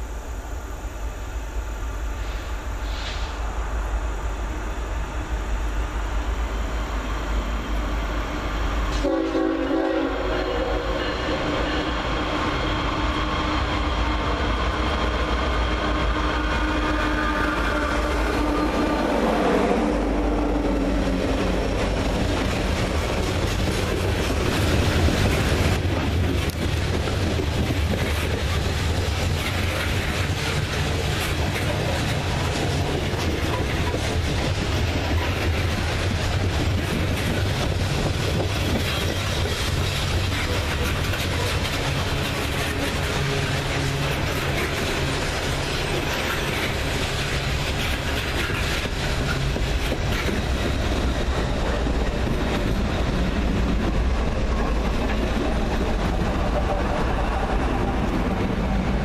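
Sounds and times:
train wheel rumble: 0.0s - 59.0s
locomotive horn: 8.9s - 12.2s, 15.9s - 20.3s, 42.7s - 44.4s
wheels clicking over rail joints: 21.1s - 56.2s.

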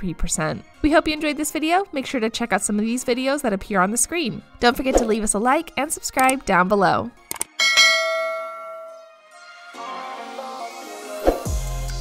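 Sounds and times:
bell chime ringing: 7.6s - 9.2s.

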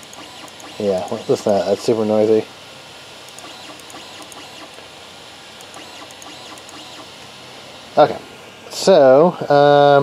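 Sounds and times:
stepper motor whine: 0.0s - 2.5s, 3.3s - 4.9s, 5.6s - 8.2s.

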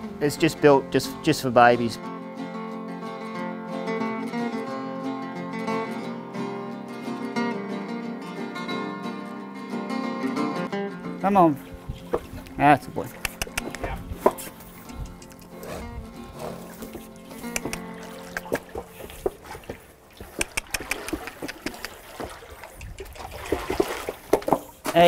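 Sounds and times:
water splashing and sloshing: 11.5s - 25.0s.

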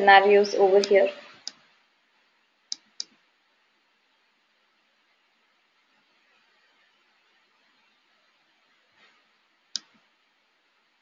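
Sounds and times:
woman speaking: 0.0s - 1.3s.

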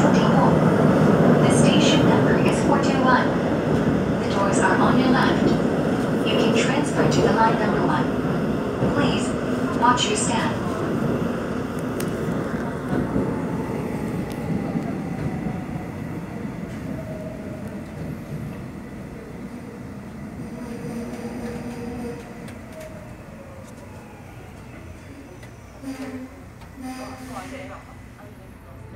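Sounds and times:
electric train braking: 24.1s - 27.7s.

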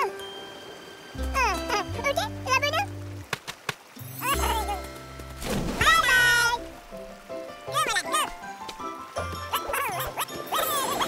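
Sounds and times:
gentle background music: 0.0s - 11.0s.

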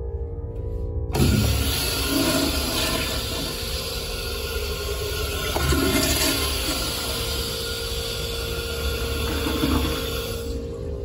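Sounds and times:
toilet flushing: 1.1s - 11.0s.

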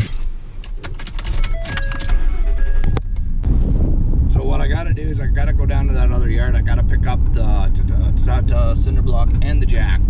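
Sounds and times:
dashboard warning chimes: 1.2s - 3.4s.

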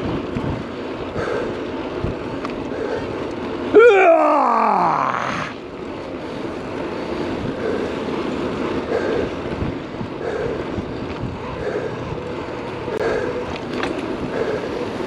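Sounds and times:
wind on microphone: 0.0s - 3.5s, 6.2s - 15.0s
bicycle tyres rolling on pavement: 0.0s - 15.0s.

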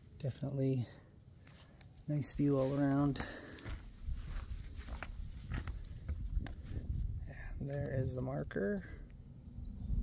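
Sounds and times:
light footsteps on stone: 1.4s - 6.9s
wind rumbling on microphone: 3.8s - 10.0s.

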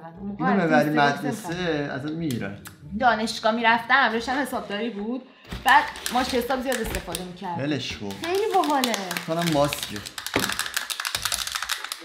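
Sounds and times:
small clicks and crackles: 8.1s - 12.0s.

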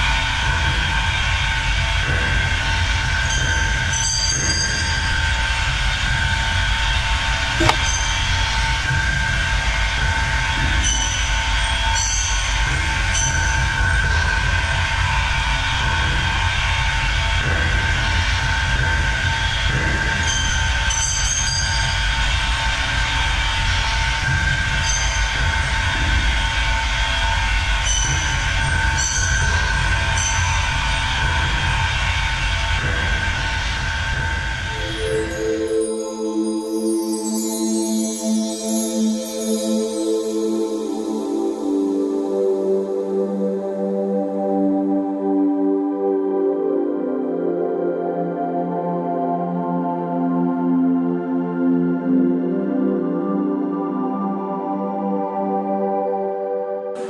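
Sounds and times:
brief high squeaks: 7.6s - 8.1s.

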